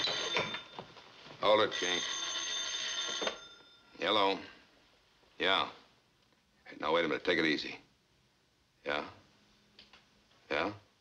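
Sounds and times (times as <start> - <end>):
telephone bell ringing: 0.0 - 4.3.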